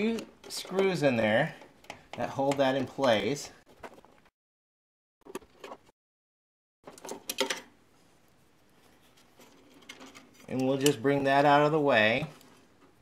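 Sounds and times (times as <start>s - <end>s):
faint clicks and rustles of wiring: 6.9s - 11.2s.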